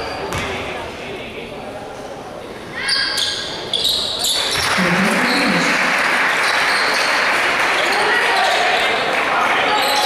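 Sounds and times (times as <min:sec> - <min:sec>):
crowd noise and shouts: 0:00.0 - 0:10.0
sneakers squeaking on court: 0:02.9 - 0:05.7.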